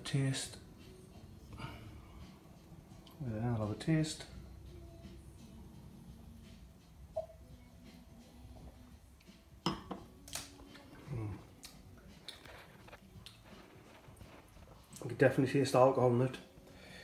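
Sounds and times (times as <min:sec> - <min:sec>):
wine glass clicks and knocks: 0:09.6 - 0:10.1
person humming mm: 0:10.8 - 0:11.6.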